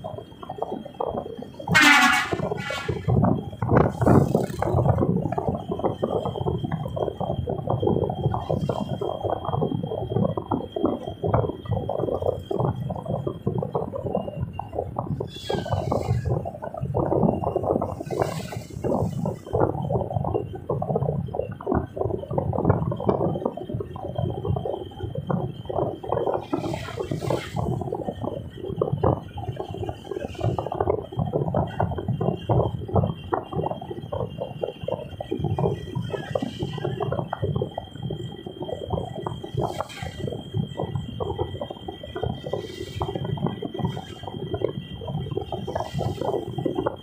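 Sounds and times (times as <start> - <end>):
car road noise rumble: 0.0 - 47.0.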